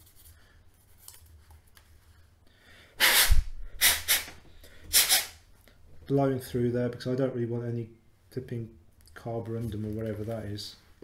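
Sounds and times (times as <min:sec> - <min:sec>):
faint handling sounds: 0:00.0 - 0:02.4, 0:08.9 - 0:11.0
forceful puffs of breath: 0:02.6 - 0:05.4.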